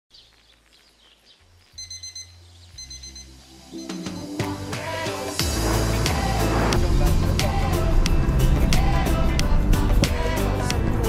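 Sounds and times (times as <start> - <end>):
digital alarm clock beeping: 1.8 - 4.4
music: 1.8 - 11.0.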